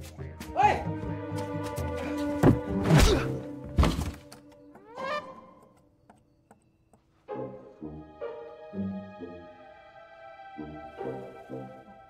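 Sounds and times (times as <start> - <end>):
dramatic film score music: 0.0 - 5.8, 7.2 - 12.0.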